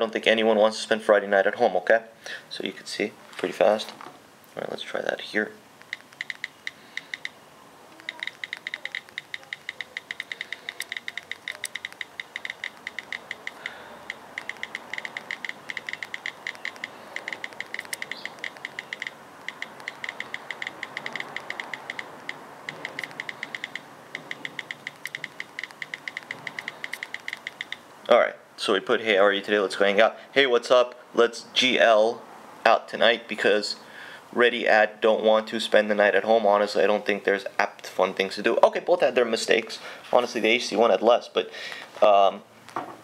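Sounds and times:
phone keyboard clicks: 5.8s - 27.8s.

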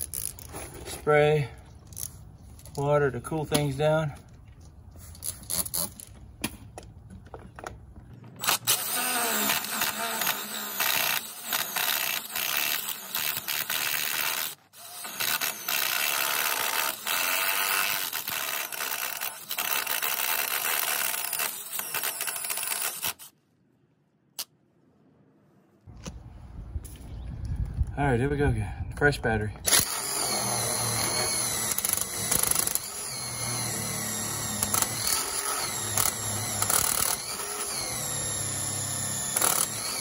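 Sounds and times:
cordless drill boring fiberglass: 8.4s - 23.3s, 29.7s - 40.0s.

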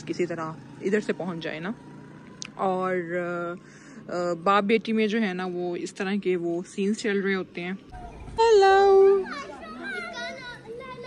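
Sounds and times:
children talking and calling out: 7.8s - 11.0s.

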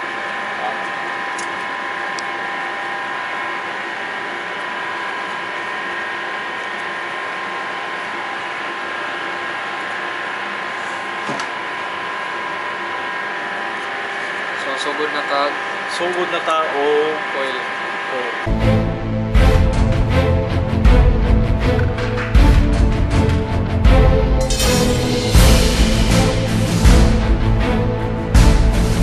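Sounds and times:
machinery hum with whining tones: 0.0s - 29.0s.

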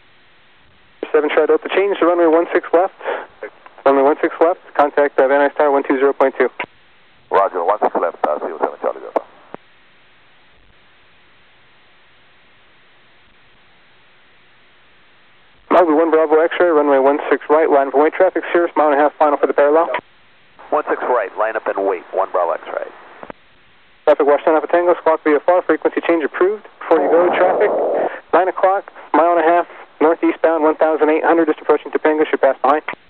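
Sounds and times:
faint radio hiss: 0.0s - 33.0s
radio voice transmissions: 1.0s - 6.7s, 7.3s - 9.6s, 20.6s - 23.3s, 24.1s - 33.0s.

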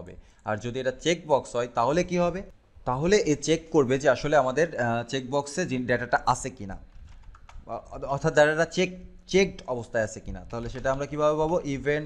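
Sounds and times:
man talking: 0.0s - 6.9s, 7.6s - 12.0s
computer keyboard typing: 6.9s - 8.0s.

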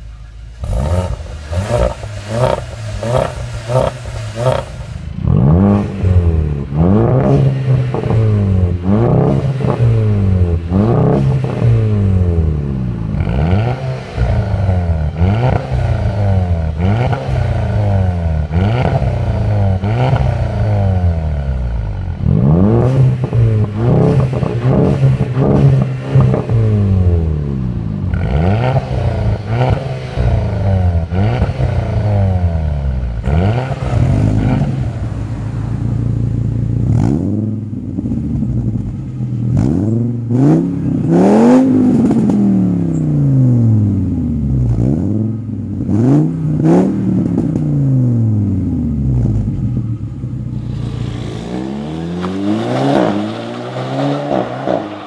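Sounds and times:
car engines revving: 0.0s - 55.0s.

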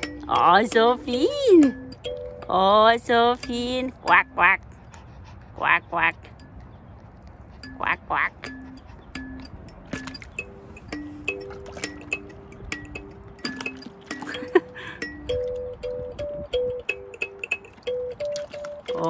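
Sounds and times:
bell-like melody: 0.0s - 4.4s, 7.5s - 19.0s.

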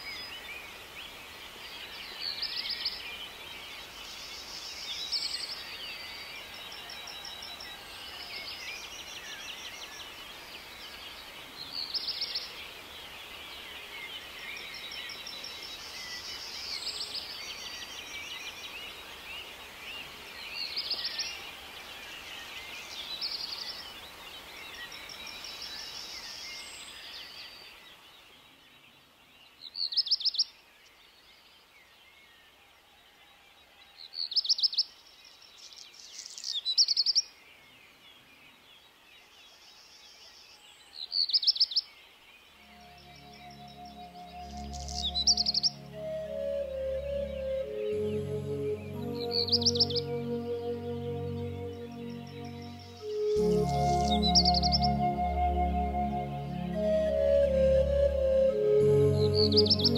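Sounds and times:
chorus of distant birds chirping: 0.0s - 59.9s
songbird trilling: 42.7s - 48.0s, 49.0s - 55.4s.

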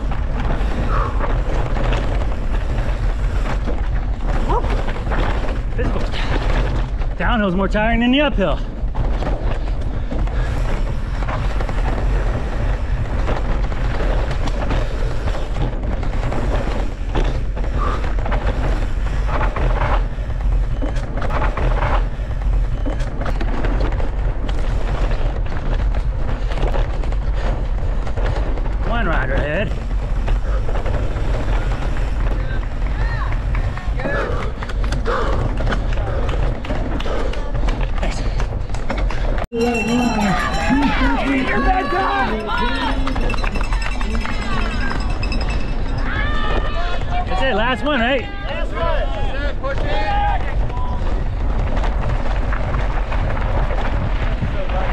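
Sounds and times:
bike rattling on rough trail: 0.0s - 54.9s
wind buffeting microphone: 0.0s - 54.9s.

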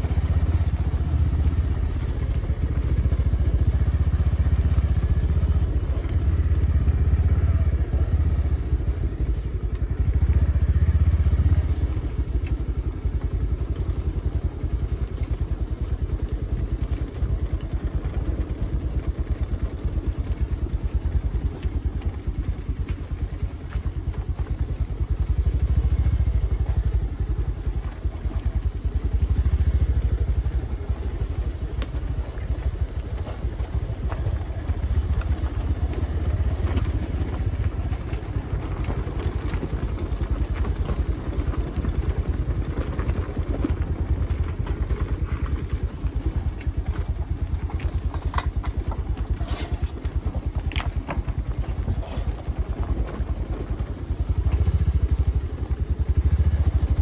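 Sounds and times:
motorcycle engine rumbling: 0.0s - 57.0s.

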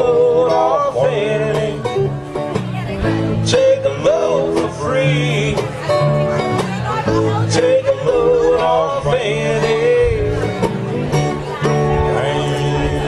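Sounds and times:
strummed acoustic guitars: 0.0s - 13.0s.

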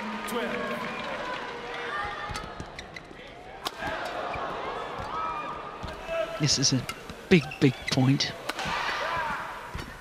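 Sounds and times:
shoes squeaking on court: 6.8s - 8.4s.

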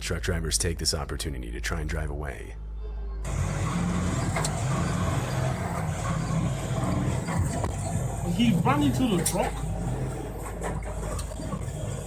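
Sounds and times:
truck engine rumble: 3.2s - 12.0s.

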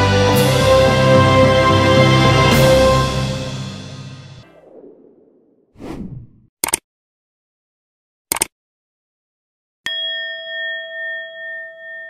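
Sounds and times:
bright bell chime: 9.9s - 12.0s.

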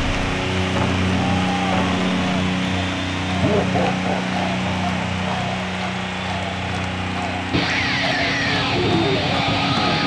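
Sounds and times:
rock electric guitar playing: 0.0s - 5.2s, 7.5s - 10.0s.

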